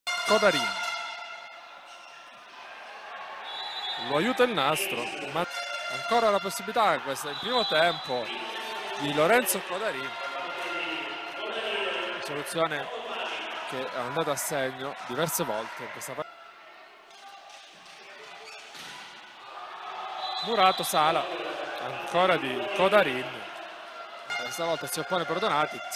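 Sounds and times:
volleyball play echoing in gym: 0.7 - 25.9
crowd murmur: 1.3 - 18.4, 19.0 - 24.4.

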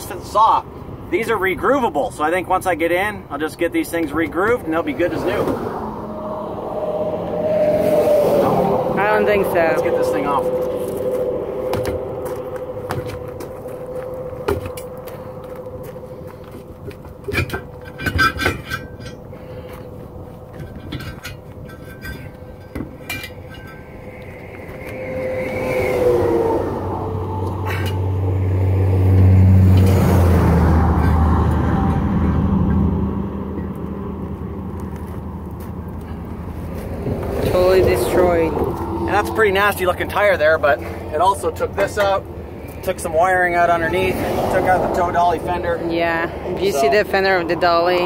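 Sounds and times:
highway traffic: 0.0 - 48.0
heavy vehicle droning: 2.8 - 48.0
hand tools clinking: 16.9 - 24.5.

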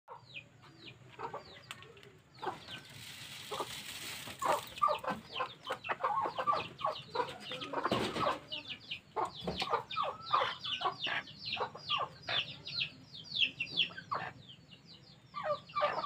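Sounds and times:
chickens clucking: 0.1 - 16.0.

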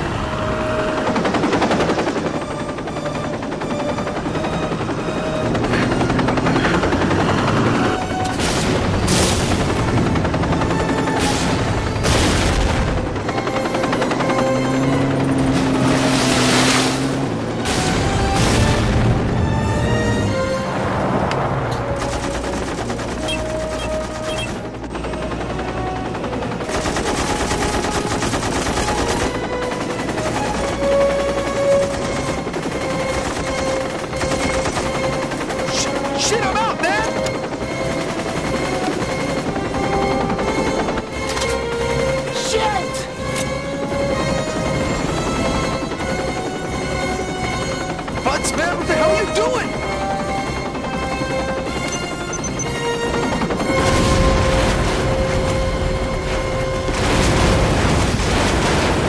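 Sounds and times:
background music: 0.0 - 59.0.

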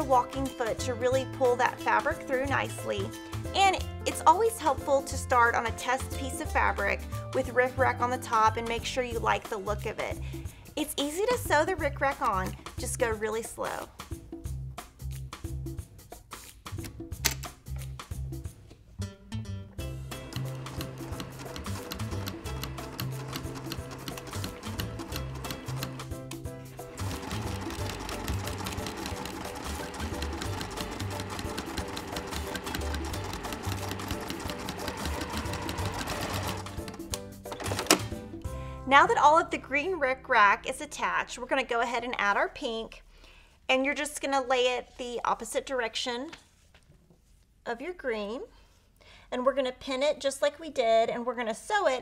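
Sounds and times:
background music: 0.0 - 42.8
sewing machine stitching: 20.2 - 38.1.

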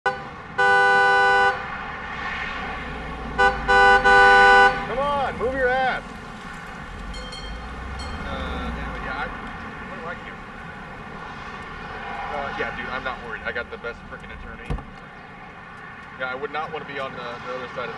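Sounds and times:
car horn honking: 0.0 - 1.7, 3.3 - 5.8
car engine rumble: 0.1 - 17.9.

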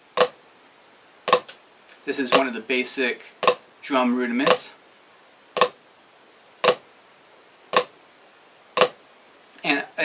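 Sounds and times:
drumsticks striking practice pad: 0.0 - 0.4, 1.3 - 1.6, 3.4 - 3.6, 4.4 - 4.7, 5.6 - 5.8, 6.6 - 6.8, 7.7 - 7.9, 8.8 - 9.0.

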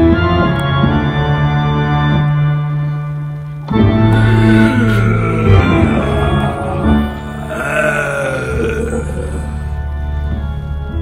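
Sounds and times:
croaking vocal groan: 4.1 - 9.8.

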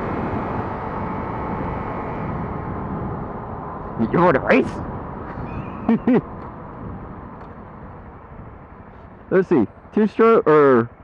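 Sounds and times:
wind rush: 0.0 - 9.3
motorcycle road noise: 0.0 - 11.0.

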